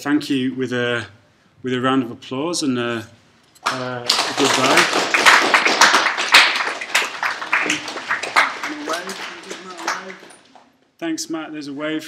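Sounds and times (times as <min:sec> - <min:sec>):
students applauding: 0:03.6 - 0:10.7.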